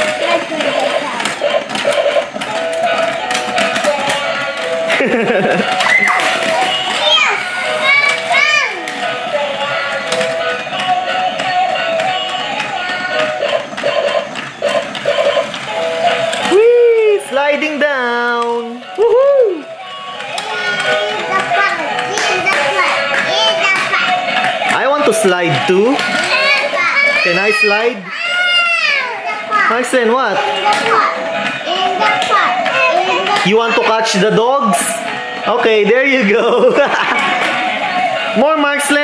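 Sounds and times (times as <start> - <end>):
toy electronic tune: 0.0 - 16.6, 18.7 - 27.2
plastic toy stairs clicking: 0.0 - 39.0
child's high gliding voice: 5.8 - 8.8, 20.4 - 24.2, 30.6 - 33.4.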